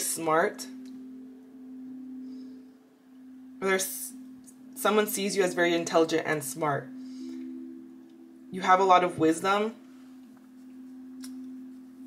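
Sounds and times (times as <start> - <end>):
soft drone music: 0.0 - 12.0.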